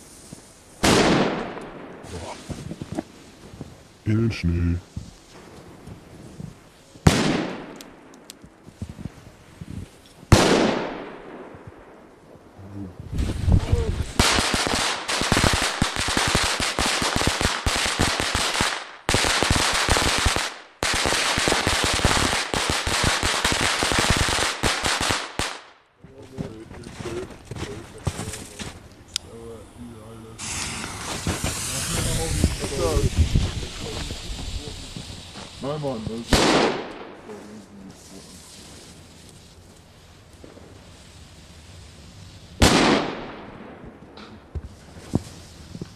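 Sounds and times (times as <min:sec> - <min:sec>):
hissing spray of sparks: 0:00.0 - 0:00.8, 0:29.2 - 0:42.8, 0:44.6 - 0:45.9
firework crackling and hissing: 0:00.0 - 0:45.9
firecracker bangs: 0:00.8 - 0:03.0, 0:07.0 - 0:07.9, 0:10.3 - 0:11.8, 0:13.1 - 0:25.7, 0:30.4 - 0:37.6, 0:42.6 - 0:45.4.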